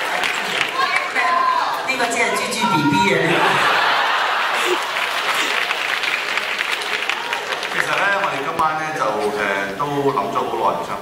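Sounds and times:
crowd applauding: 0.0s - 1.9s, 3.2s - 9.0s.

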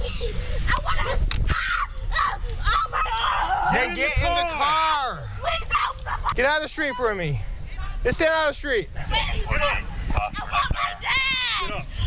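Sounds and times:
girl screaming: 0.7s - 3.7s, 10.5s - 11.8s.

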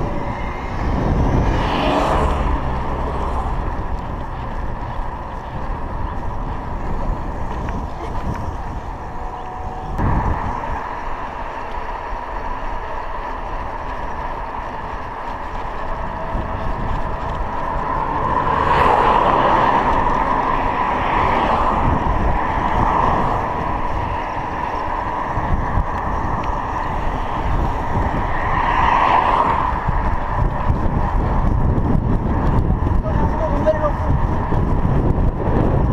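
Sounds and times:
bicycle tyre road noise: 0.0s - 35.9s
wind on microphone: 0.0s - 35.9s.

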